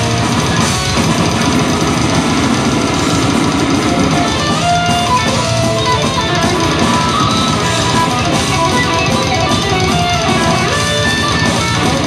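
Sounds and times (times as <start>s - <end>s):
metal band playing: 0.0s - 12.0s.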